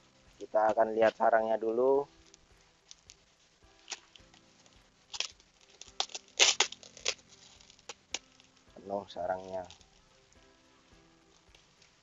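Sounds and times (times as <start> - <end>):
plastic sheet crinkling: 2.1 - 8.6, 9.2 - 10.1.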